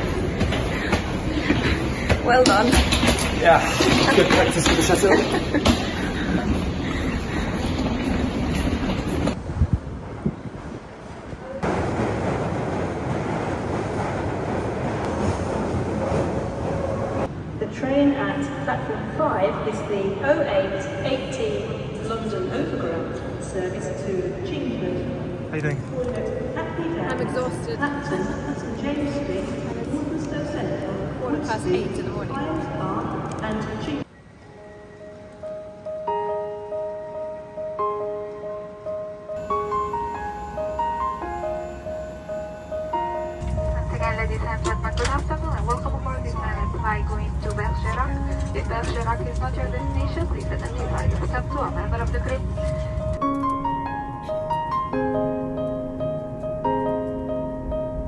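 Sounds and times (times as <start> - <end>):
station hall hubbub: 0.0 - 58.0
underground train running: 0.0 - 58.0
woman speaking: 2.2 - 2.8, 26.0 - 34.1, 43.6 - 52.7
station voices: 15.8 - 34.1, 43.4 - 53.3
soft background music: 25.9 - 58.0.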